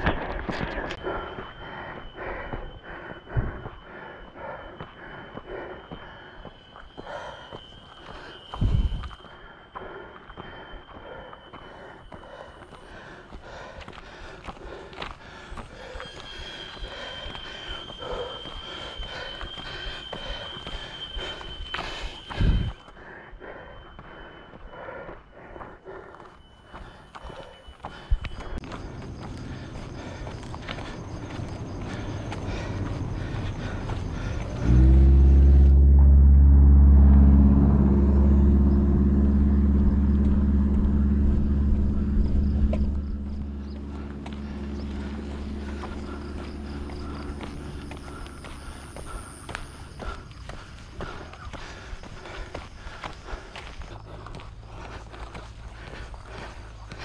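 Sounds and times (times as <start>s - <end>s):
running footsteps on pavement: 0.0s - 35.7s, 40.1s - 57.0s
loud low hum: 28.2s - 57.0s
thin high tone: 34.9s - 49.4s.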